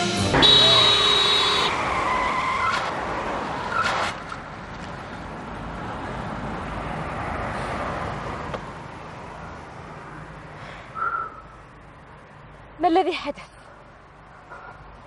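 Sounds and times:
car tyres screeching: 0.4s - 11.7s.

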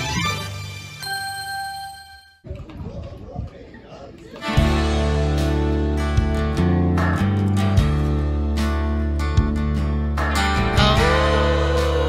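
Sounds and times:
busy restaurant room noise: 2.4s - 5.9s.

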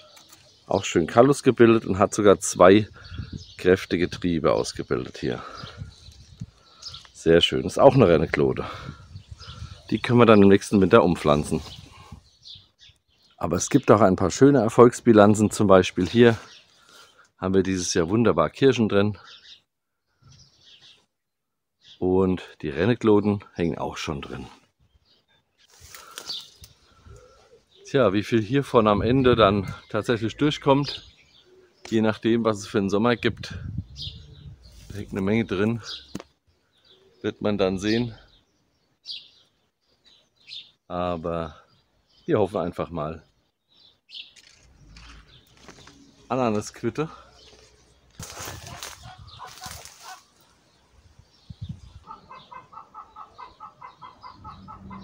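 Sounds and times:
leaves rustling: 25.6s - 27.6s, 34.6s - 35.7s, 44.4s - 51.1s
chicken clucking: 52.1s - 55.0s.

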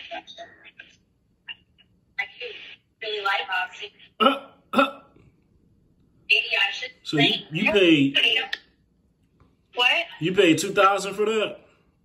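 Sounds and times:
person making sharp vocal sounds: 4.2s - 5.1s.

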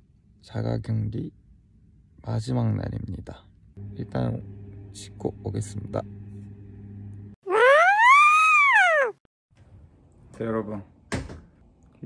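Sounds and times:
cartoon whistle sliding in pitch: 7.5s - 9.1s.

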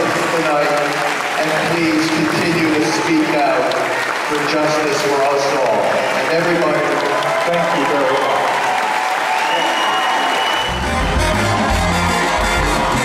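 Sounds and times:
audience applauding: 0.0s - 13.0s
band music with heavy bass line: 10.7s - 13.0s.

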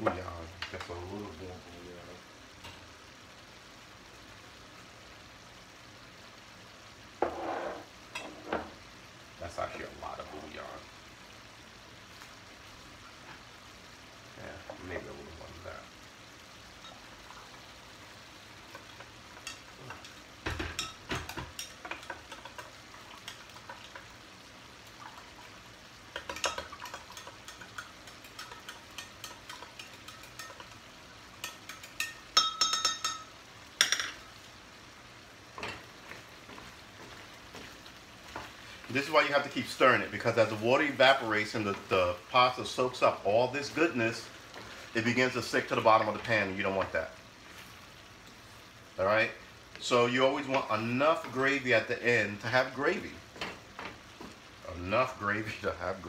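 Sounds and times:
faint sizzle from pan: 0.0s - 56.0s.

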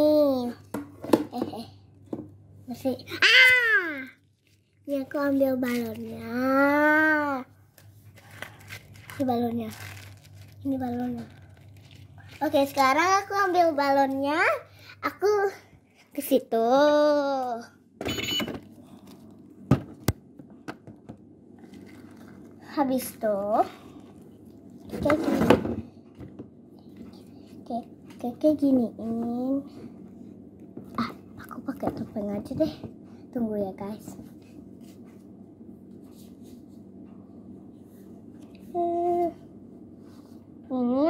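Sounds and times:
paper and cloth rustling: 7.8s - 13.3s, 21.6s - 22.5s.

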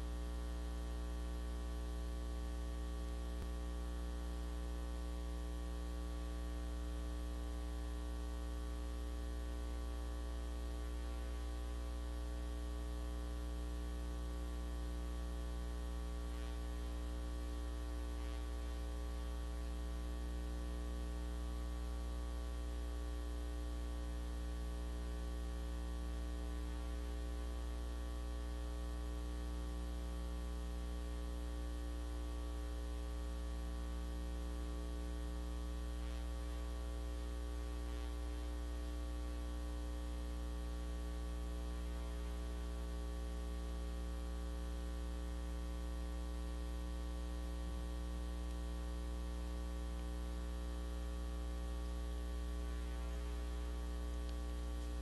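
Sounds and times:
electrical mains hum: 0.0s - 55.0s.

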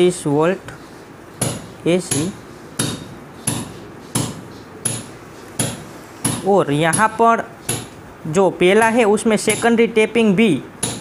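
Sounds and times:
sharp knocks: 1.4s - 8.0s, 10.8s - 11.0s.

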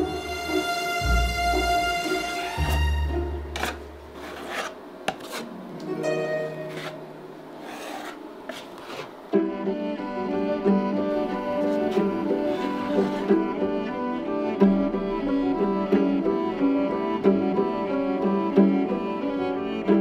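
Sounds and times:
music with bowed strings: 0.0s - 4.7s, 5.7s - 7.2s, 8.9s - 20.0s
putty knife scraping plaster: 3.6s - 5.5s, 6.7s - 7.0s, 7.6s - 9.2s, 11.6s - 13.4s.

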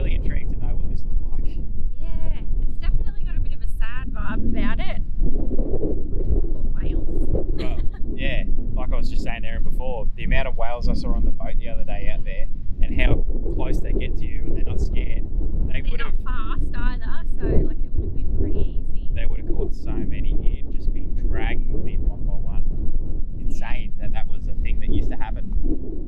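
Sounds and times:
people talking: 0.0s - 5.0s, 6.5s - 22.6s, 23.4s - 25.5s
wind buffeting microphone: 0.0s - 26.0s.

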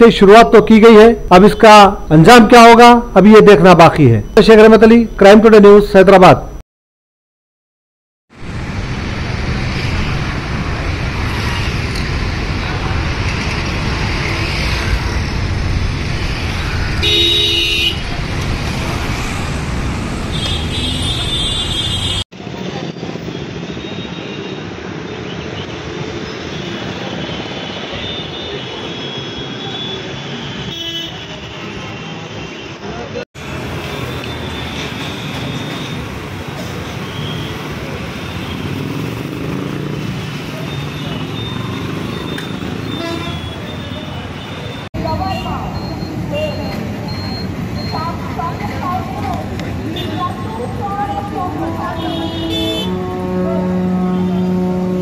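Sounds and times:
street traffic: 0.0s - 6.6s, 8.3s - 55.0s
vehicle horns tooting: 17.0s - 18.1s, 20.3s - 22.2s, 26.5s - 32.9s, 40.6s - 46.8s, 49.8s - 50.7s, 51.3s - 55.0s.

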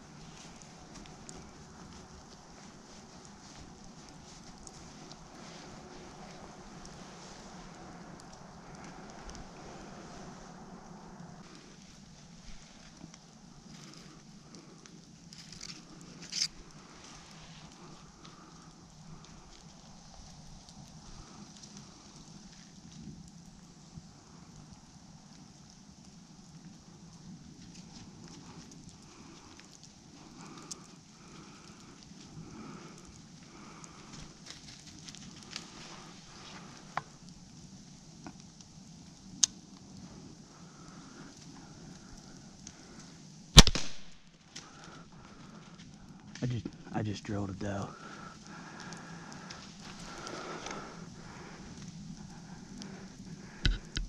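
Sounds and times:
faint clicks: 38.2s - 46.9s, 47.9s - 54.0s
bow shot crack: 43.6s - 44.2s.

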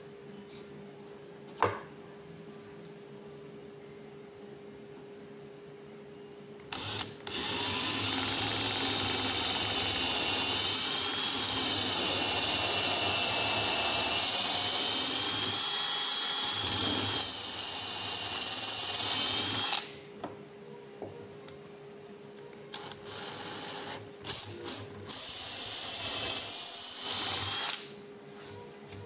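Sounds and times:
power drill boring wood: 6.8s - 19.9s, 23.1s - 27.9s.

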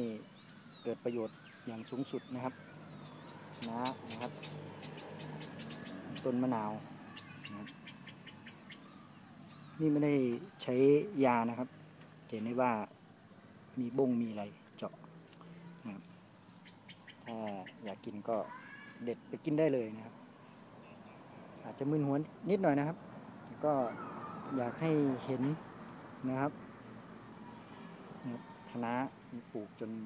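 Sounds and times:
faint high bird chirps: 0.0s - 11.2s, 15.4s - 19.4s, 23.6s - 25.6s.

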